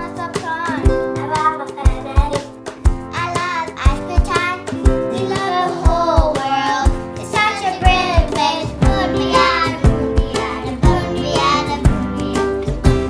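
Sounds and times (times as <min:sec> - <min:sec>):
backing music with steady beat: 0:00.0 - 0:13.0
child singing: 0:00.0 - 0:13.0.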